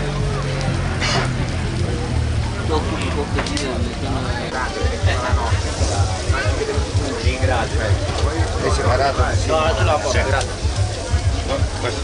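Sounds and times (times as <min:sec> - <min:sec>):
music with pulsing bass beat: 0:00.0 - 0:12.0
voices talking: 0:00.0 - 0:12.0.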